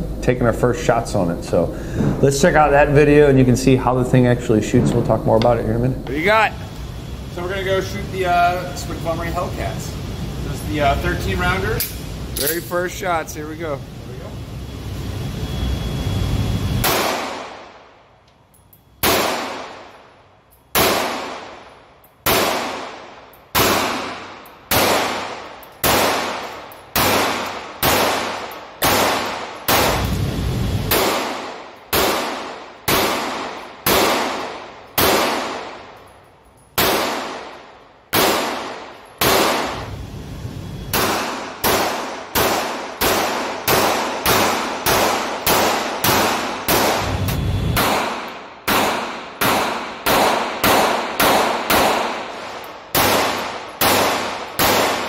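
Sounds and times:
pistol shots echoing indoors: 16.8s - 18.0s, 19.0s - 20.1s, 20.7s - 30.2s, 30.8s - 36.1s, 36.7s - 39.9s, 40.9s - 55.0s.

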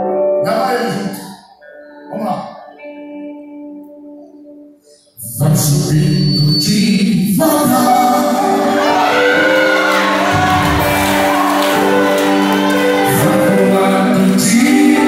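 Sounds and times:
man and woman singing gospel: 5.2s - 15.0s
instrumental accompaniment: 7.9s - 15.0s.

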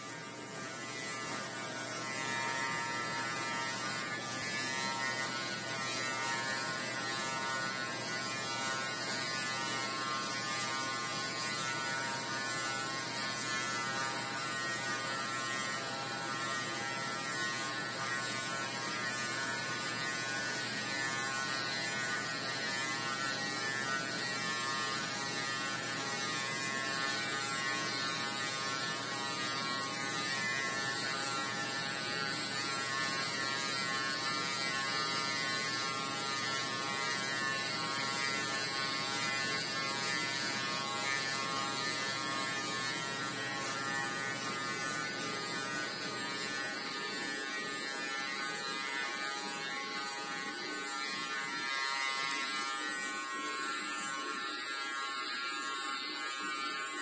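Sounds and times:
electric hair clipper buzzing: 0.0s - 57.0s.

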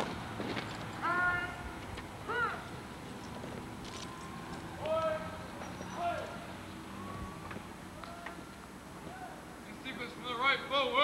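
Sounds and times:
person shouting drill commands: 1.0s - 1.6s, 2.2s - 2.7s.

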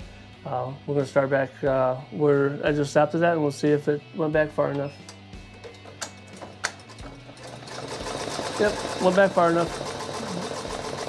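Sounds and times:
embroidery machine stitching: 6.3s - 11.0s.

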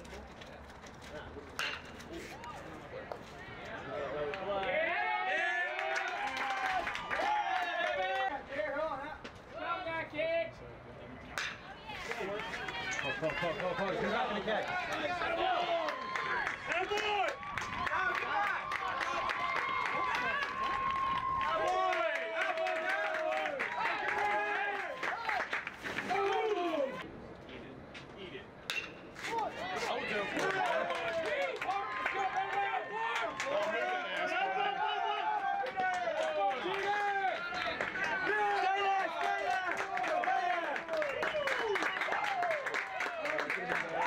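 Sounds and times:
spectators shouting and calling: 11.5s - 27.0s, 29.2s - 43.2s.

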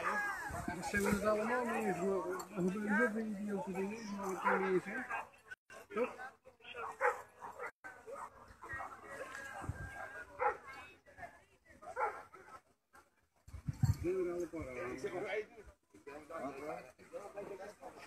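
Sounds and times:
dog barking: 3.8s - 5.4s, 6.9s - 8.9s, 10.4s - 10.7s, 11.9s - 12.3s.

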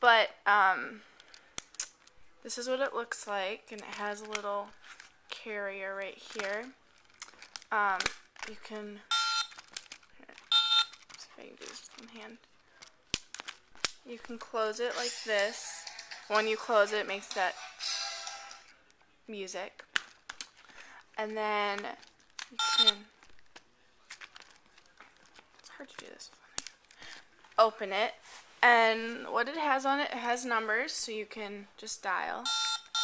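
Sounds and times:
toy phone electronic beeps: 9.1s - 9.6s, 10.5s - 11.0s, 22.6s - 23.0s, 32.4s - 33.0s
light clicks and rustles: 23.2s - 27.6s.

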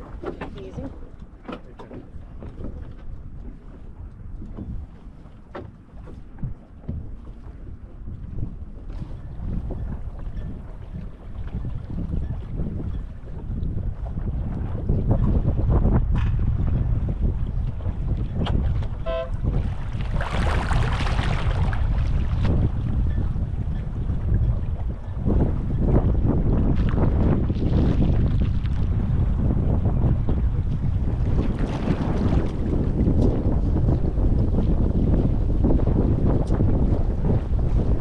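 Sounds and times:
wind buffeting microphone: 0.0s - 38.0s
short pitched tone: 19.0s - 19.4s.

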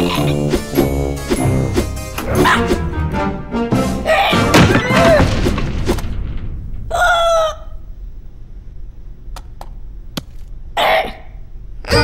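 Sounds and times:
cartoon background music: 0.0s - 5.2s
comic thuds: 0.5s - 7.5s.

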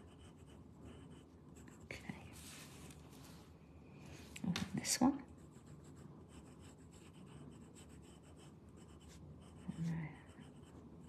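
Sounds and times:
pencil scratching on paper: 0.0s - 2.8s, 5.3s - 11.0s.

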